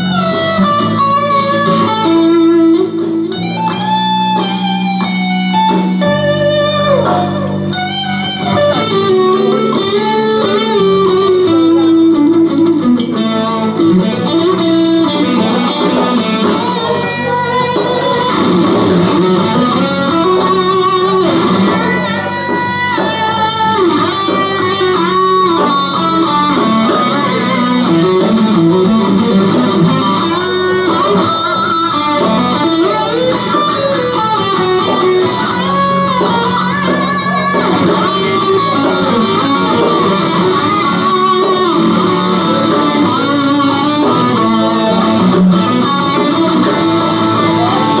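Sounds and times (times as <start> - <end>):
electric guitar lead lines: 0.0 - 48.0
rock backing track with bass: 0.0 - 48.0.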